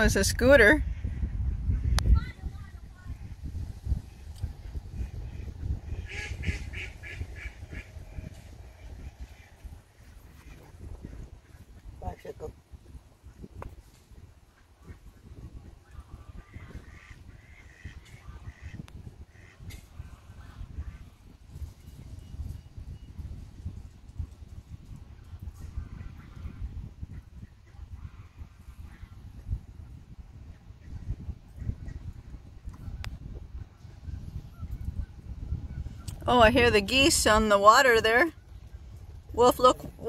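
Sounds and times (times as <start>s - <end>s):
steady low rumble: 0.0s - 22.3s
geese honking: 5.4s - 7.9s.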